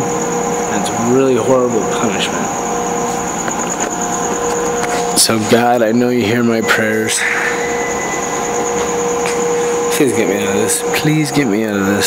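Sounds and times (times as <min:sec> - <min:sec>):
thin high whine: 0:00.0 - 0:12.0
mid-pitched tone: 0:05.2 - 0:10.9.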